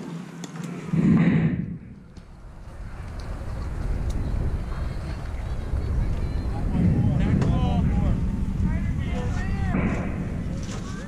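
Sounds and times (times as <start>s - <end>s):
players calling out and chattering: 0.0s - 11.0s
wind on microphone: 0.9s - 11.0s.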